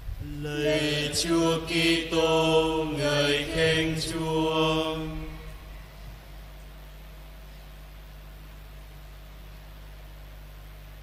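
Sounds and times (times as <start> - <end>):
men chanting: 0.2 - 5.9.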